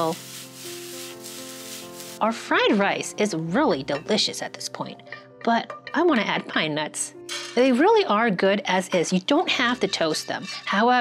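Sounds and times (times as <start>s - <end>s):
rice sizzling in a skillet: 0.0s - 2.3s
soft background music: 0.0s - 11.0s.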